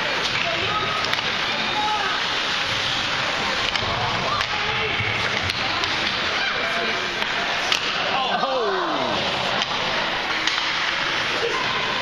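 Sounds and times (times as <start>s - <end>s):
crowd noise: 0.0s - 12.0s
hockey sticks and puck clacking: 0.1s - 8.2s, 9.1s - 11.5s.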